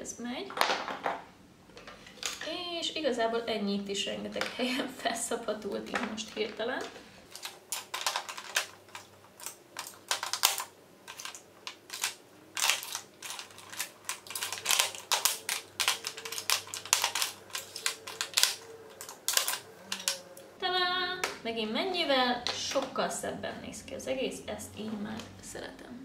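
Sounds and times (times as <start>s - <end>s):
lipstick tubes clicking and clattering: 7.3s - 20.2s.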